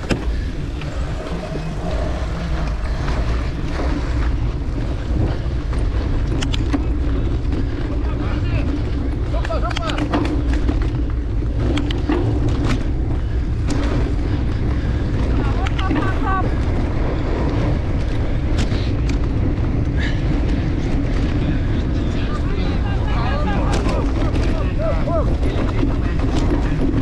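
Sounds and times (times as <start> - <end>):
bike tyres rumbling on dirt: 0.0 - 27.0
wind buffeting microphone: 0.0 - 27.0
bike rattling clicks: 4.8 - 22.0.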